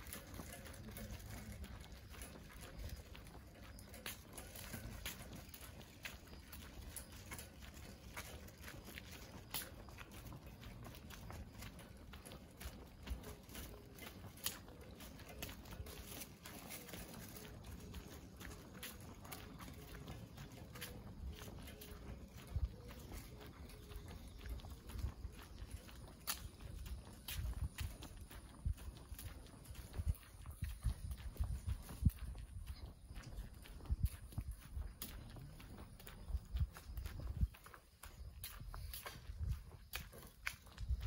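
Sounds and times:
footsteps on asphalt: 0.0s - 41.0s.

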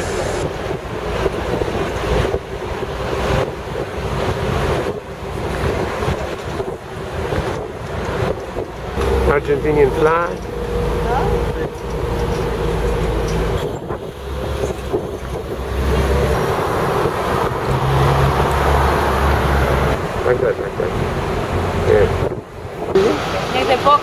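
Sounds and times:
bus rumbling: 0.0s - 24.0s
street traffic: 0.0s - 24.0s
wind buffeting the microphone: 0.0s - 24.0s.

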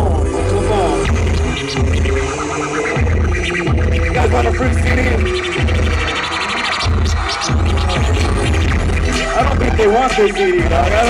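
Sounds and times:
hip-hop beat over loudspeakers: 0.0s - 11.0s
record scratching: 0.0s - 11.0s.

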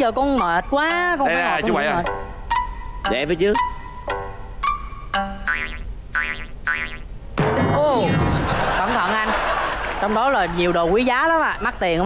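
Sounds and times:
comedy pitch-bending notes: 0.4s - 8.2s.

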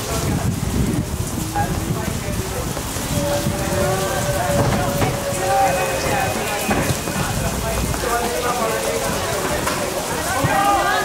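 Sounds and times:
steady rain hiss: 0.0s - 11.0s
distant shouts: 2.9s - 11.0s.

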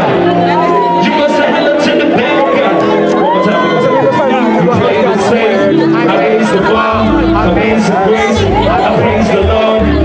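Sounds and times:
loud backing music with beat: 0.0s - 10.0s
man rapping through microphone: 0.0s - 10.0s.

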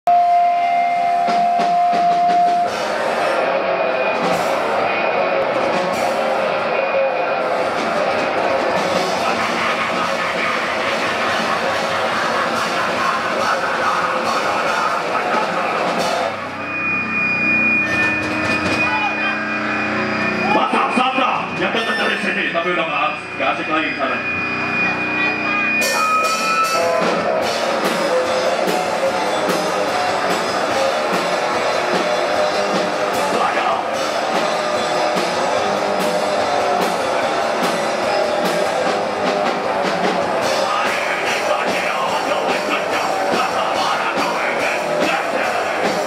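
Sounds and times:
distorted guitar and drums: 0.0s - 46.0s
high ringing tone: 16.3s - 27.3s.

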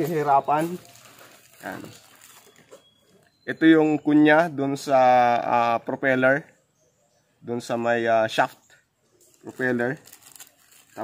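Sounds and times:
plastic bag crinkling: 0.0s - 2.9s, 9.3s - 11.0s.

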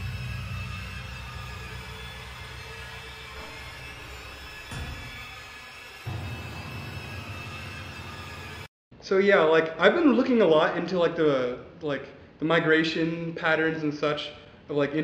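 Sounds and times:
ominous low drone music: 0.0s - 8.7s.

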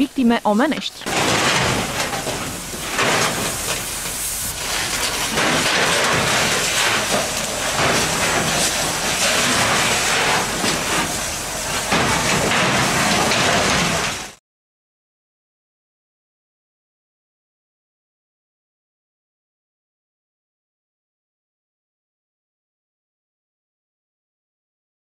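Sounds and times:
fire hose spraying water: 1.1s - 14.4s.

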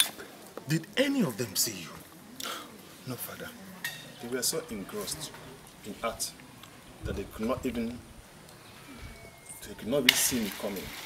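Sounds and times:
man's low voice: 7.0s - 8.2s.

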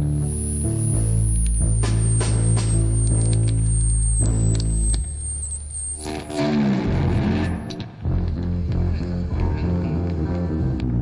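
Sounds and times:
thin high whine: 0.0s - 8.0s
electric guitar notes ringing: 0.0s - 8.3s
deep bass note: 0.0s - 11.0s.

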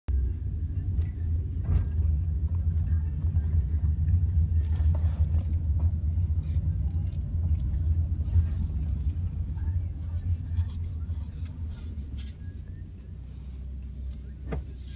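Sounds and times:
car engine and tyre noise: 0.1s - 14.9s.

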